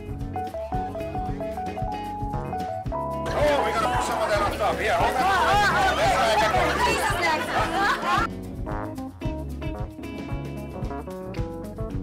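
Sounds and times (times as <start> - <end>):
background music with steady beat: 0.0 - 12.0
people talking and laughing: 3.3 - 8.3.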